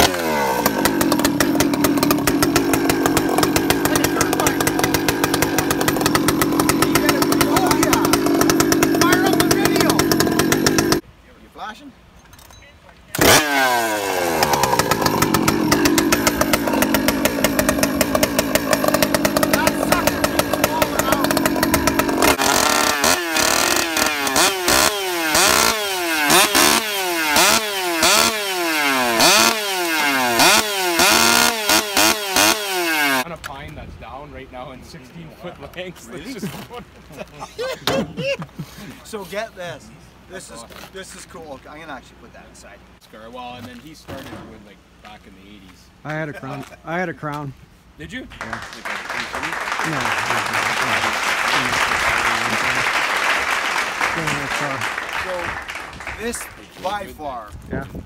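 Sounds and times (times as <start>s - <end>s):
chainsaw running: 0.0s - 11.0s, 13.2s - 33.3s, 48.5s - 57.1s
chainsaw throttle revving: 0.0s - 11.0s, 13.2s - 33.3s, 48.8s - 56.3s.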